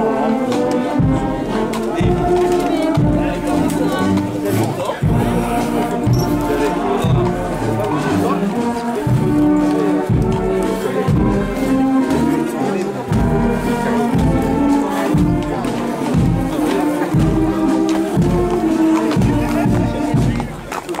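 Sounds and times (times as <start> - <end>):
brass band playing a march: 0.0 - 21.0
low drum beat: 0.0 - 21.0.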